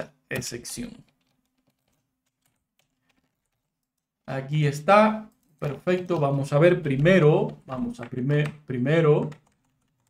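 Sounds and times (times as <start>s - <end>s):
keyboard typing clicks: 0.3s - 4.1s, 5.2s - 10.0s.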